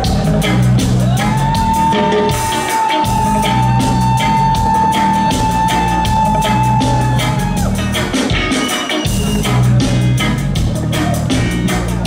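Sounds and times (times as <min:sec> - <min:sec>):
drum kit beat: 0:00.0 - 0:12.0
electric bass guitar: 0:00.0 - 0:12.0
reggae band playing: 0:00.0 - 0:12.0.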